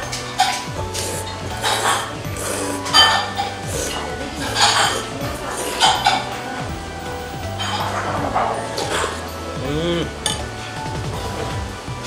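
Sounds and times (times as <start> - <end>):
background music: 0.0 - 12.0
man slurping soup: 1.0 - 6.2
man humming mmm: 9.6 - 10.2.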